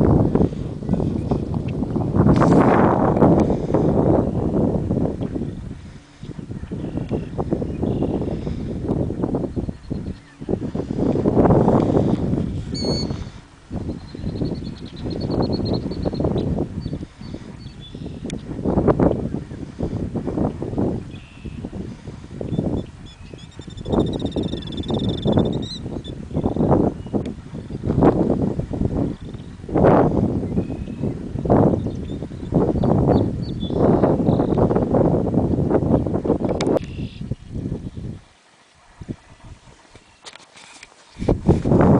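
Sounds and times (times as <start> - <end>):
wind buffeting microphone: 0.0 - 41.9
faint bird chirps: 12.7 - 13.2.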